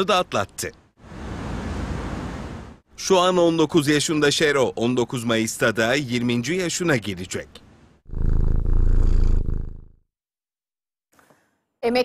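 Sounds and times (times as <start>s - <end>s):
cat purring loudly: 8.1s - 10.0s.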